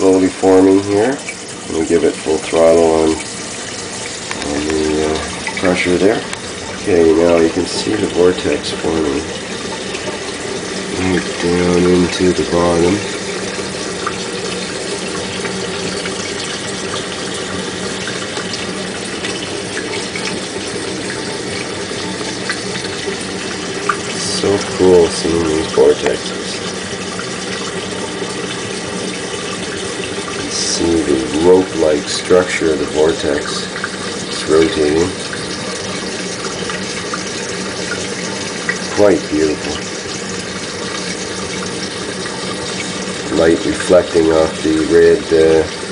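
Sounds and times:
water rushing: 0:00.0 - 0:45.9.

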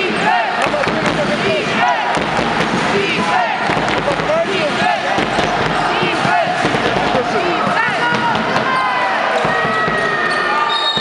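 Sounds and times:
crowd voices and shouts: 0:00.0 - 0:11.0
basketball bouncing: 0:03.6 - 0:08.8, 0:09.4 - 0:10.2.

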